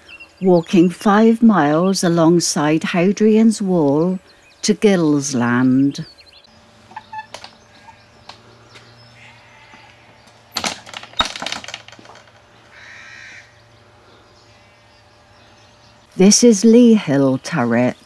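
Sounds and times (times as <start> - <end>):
crow cawing: 6.9 - 10.4, 12.6 - 13.6.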